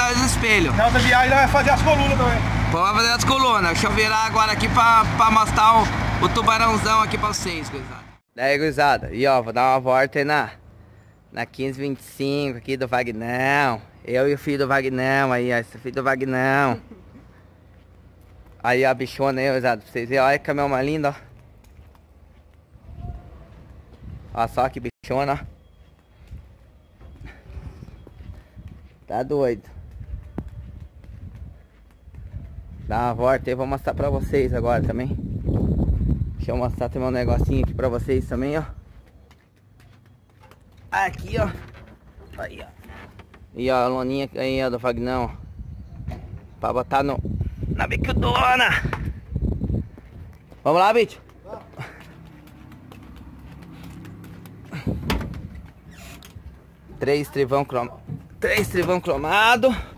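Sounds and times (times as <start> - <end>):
truck engine idling: 0.0 - 8.2
footsteps on concrete: 17.5 - 18.7, 21.1 - 24.3, 27.9 - 33.1, 38.7 - 41.0, 49.8 - 56.9.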